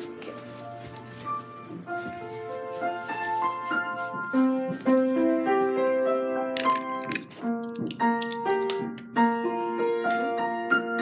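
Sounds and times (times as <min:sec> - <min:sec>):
piano melody: 0:00.0 - 0:11.0.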